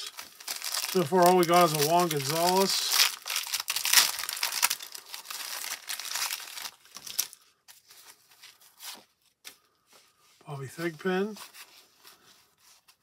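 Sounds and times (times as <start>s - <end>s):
plastic wrapper crinkling and tearing: 0.0s - 8.7s.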